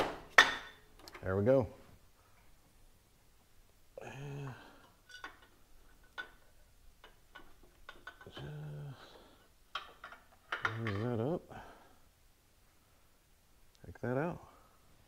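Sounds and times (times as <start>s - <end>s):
wordless vocal sounds: 3.9s - 5.0s, 8.2s - 9.5s.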